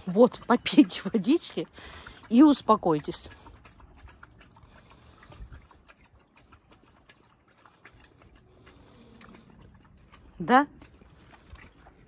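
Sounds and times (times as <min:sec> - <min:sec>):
wolves lapping water: 0:00.0 - 0:12.0.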